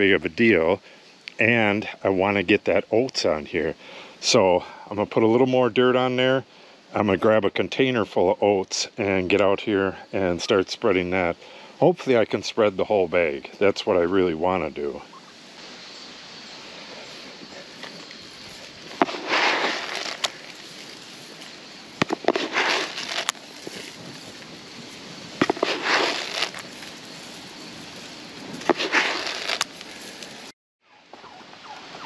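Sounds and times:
faint hiss: 0.0s - 30.5s
seed rustling onto soil: 16.6s - 30.5s.

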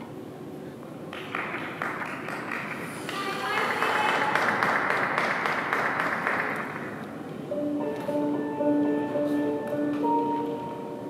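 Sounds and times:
audience clapping and cheering: 1.1s - 7.0s
music with held notes: 7.5s - 11.0s.

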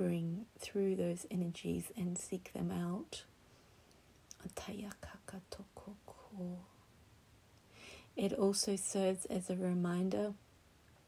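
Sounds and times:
woman whispering softly: 4.4s - 6.8s.

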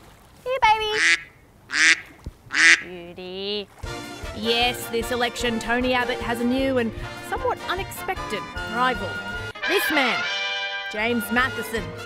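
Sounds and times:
bird harsh calls: 0.9s - 2.9s.

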